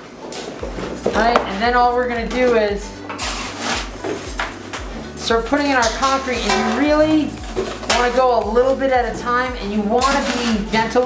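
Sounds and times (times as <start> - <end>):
scoop scraping wet concrete: 5.7 - 8.2, 10.0 - 11.0.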